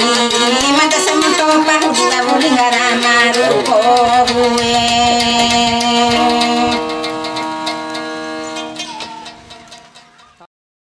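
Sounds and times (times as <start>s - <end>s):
violin holding long note: 0.0s - 10.0s
plucked lute: 0.0s - 10.5s.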